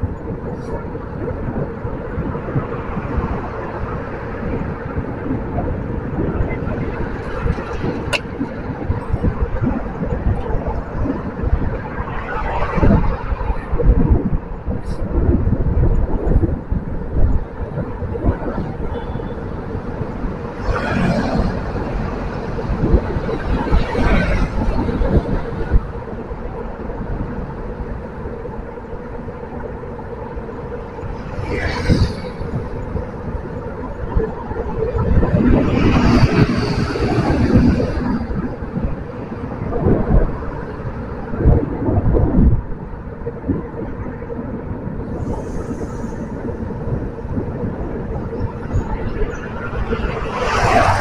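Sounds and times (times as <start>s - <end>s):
car engine and road noise: 0.0s - 51.0s.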